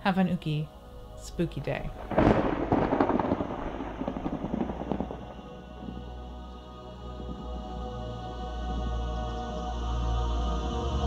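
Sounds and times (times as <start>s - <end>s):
thunder rumbling: 0.7s - 9.4s.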